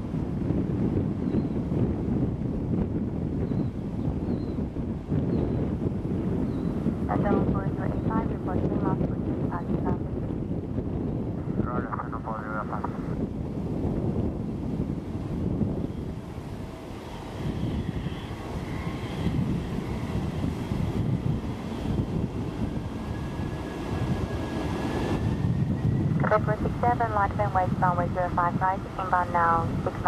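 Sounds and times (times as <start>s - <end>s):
jet engines rumbling: 0.0s - 30.0s
wind buffeting microphone: 0.0s - 30.0s.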